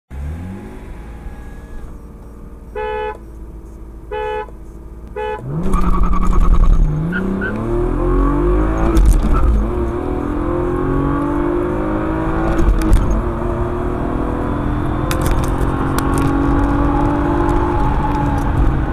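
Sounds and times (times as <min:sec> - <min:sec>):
car engine accelerating: 0:00.1 - 0:18.9.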